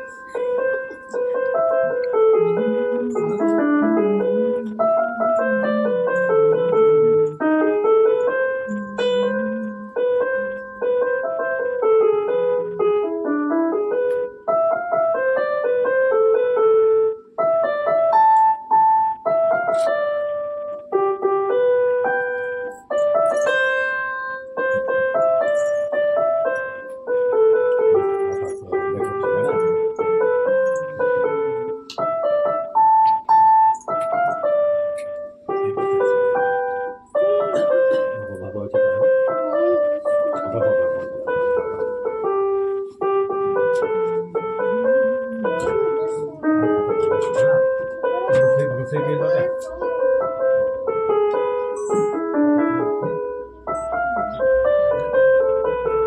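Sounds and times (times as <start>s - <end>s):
piano music: 0.0s - 56.0s.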